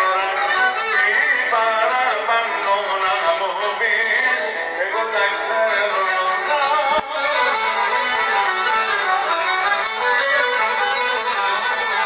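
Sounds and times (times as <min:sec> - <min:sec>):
violin playing: 0:00.0 - 0:04.0, 0:04.8 - 0:12.0
man singing: 0:00.0 - 0:08.0.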